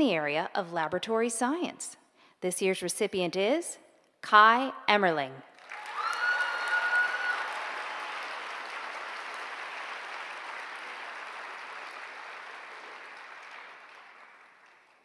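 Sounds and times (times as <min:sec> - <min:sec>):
audience applauding: 0:05.6 - 0:15.0.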